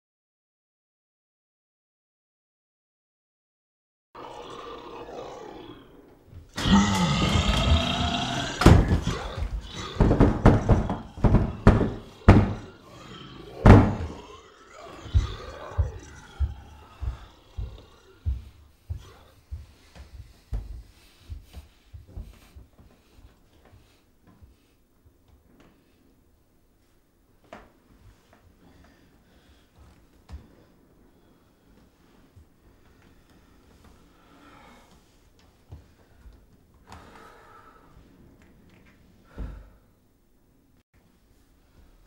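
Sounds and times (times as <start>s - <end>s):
heavy thumps against a door: 8.6s - 12.7s, 13.6s - 14.2s.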